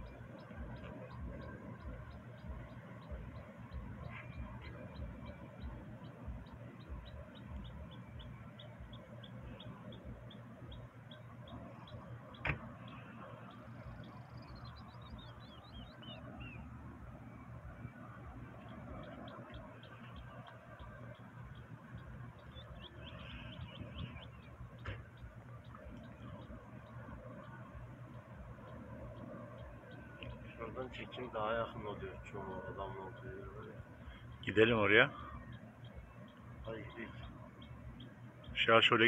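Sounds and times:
small bird chirping: 0.0 - 16.7, 18.0 - 39.0.

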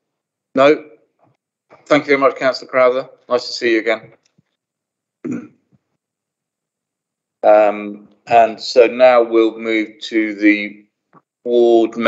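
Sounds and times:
person clearing throat: 5.2 - 5.7.

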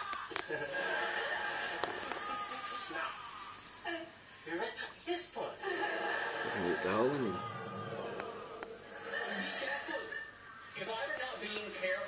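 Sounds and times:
faint steady hum: 0.0 - 10.7
television voices: 0.0 - 12.0.

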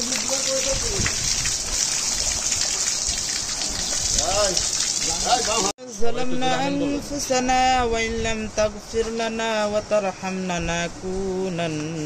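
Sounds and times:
water running from taps: 0.0 - 5.7
water splashing into basin: 0.0 - 5.7.

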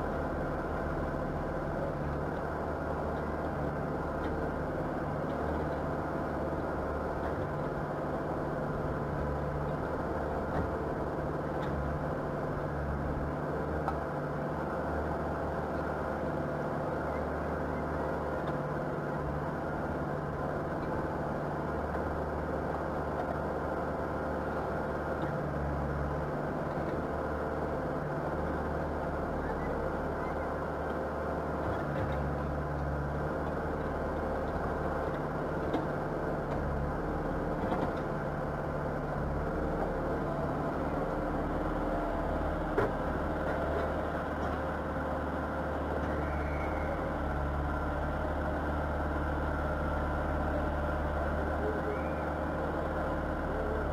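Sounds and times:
diesel engine idling: 0.0 - 53.9.

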